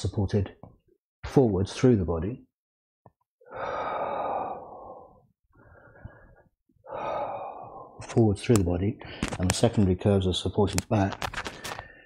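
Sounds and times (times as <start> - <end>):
person breathing: 3.4 - 8.1, 9.0 - 9.4, 11.4 - 12.0.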